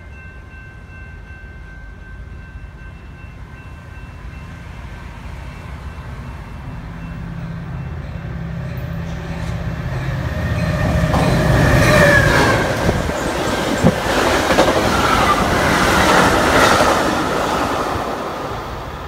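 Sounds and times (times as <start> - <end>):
diesel locomotive engine drone: 0.0 - 19.0
rush of passing train coaches: 0.0 - 19.0
wheels clacking over rail joint: 10.8 - 17.2.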